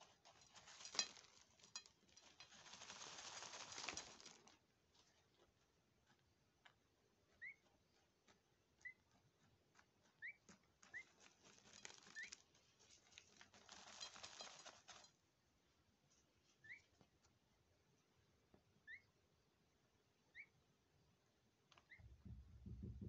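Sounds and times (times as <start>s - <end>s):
falling grains ticking: 0.0s - 4.6s, 10.9s - 15.2s
wings fluttering: 0.0s - 4.6s, 10.2s - 15.1s
rustling of scattered earth: 0.0s - 17.4s.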